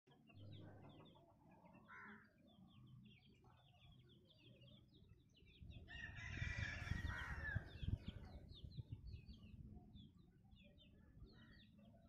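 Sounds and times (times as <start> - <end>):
small birds chirping: 0.1 - 12.0.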